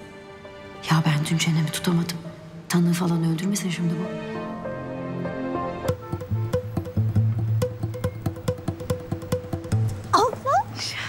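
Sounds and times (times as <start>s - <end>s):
held orchestral chords: 4.2s - 10.1s
ticking percussion rhythm: 5.9s - 10.6s.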